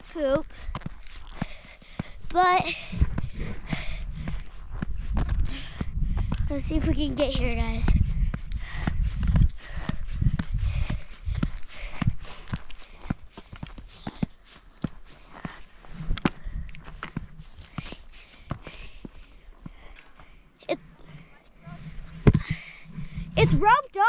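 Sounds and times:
footsteps on concrete stairs: 0.4 - 20.4
low rumble: 20.8 - 23.6.

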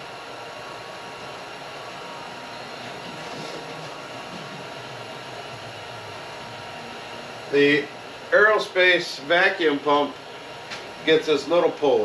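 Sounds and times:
faint constant hum: 0.0 - 12.0
room noise hiss: 0.0 - 12.0.

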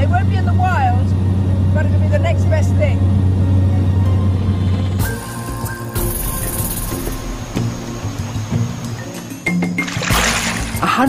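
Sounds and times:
aircraft engine drone: 0.0 - 9.5
background music: 0.0 - 11.0.

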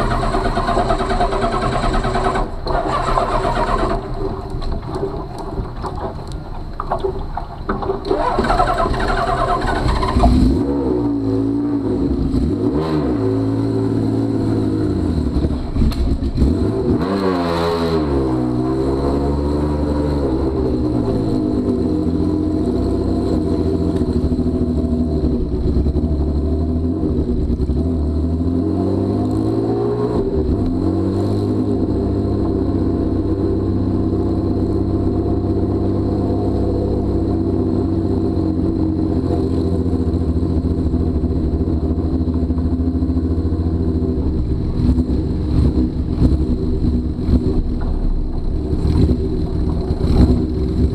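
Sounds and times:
motorcycle engine revving and idling: 0.0 - 7.0, 7.6 - 50.9.

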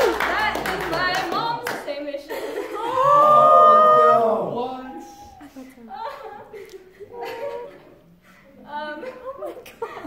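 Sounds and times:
group clapping: 0.0 - 2.2
people cheering: 2.8 - 5.6.

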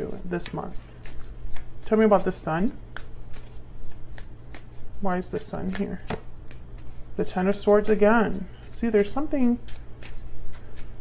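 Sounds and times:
cards being shuffled: 0.0 - 7.2, 8.6 - 11.0.

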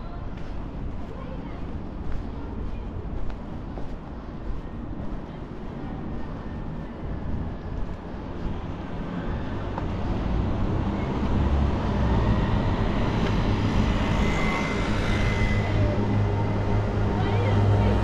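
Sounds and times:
vehicle rumble with whine: 4.7 - 18.0.

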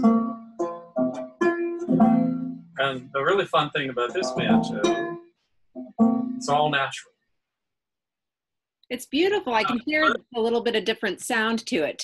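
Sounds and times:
banjo strings plucked: 0.0 - 6.9.

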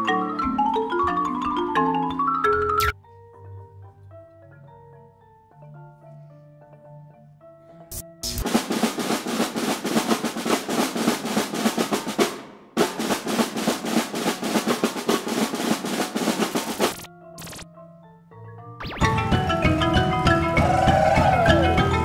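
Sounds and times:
snare drum rolls: 7.9 - 17.6.

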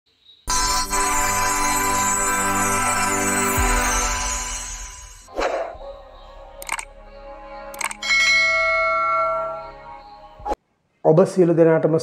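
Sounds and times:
bell chime: 0.5 - 5.3, 8.0 - 10.5.

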